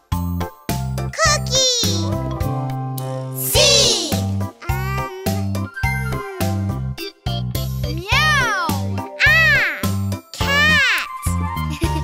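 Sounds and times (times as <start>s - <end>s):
children's song music: 0.0s - 12.0s
cartoon child's voice meowing: 3.5s - 5.4s, 8.1s - 11.2s.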